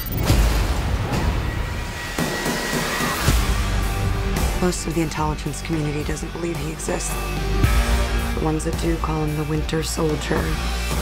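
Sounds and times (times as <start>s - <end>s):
music: 0.0s - 11.0s
sudden impact hit: 0.1s - 4.6s.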